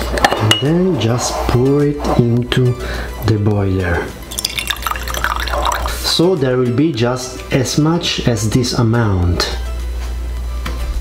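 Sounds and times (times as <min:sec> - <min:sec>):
water pouring into metal pot: 0:04.3 - 0:06.0.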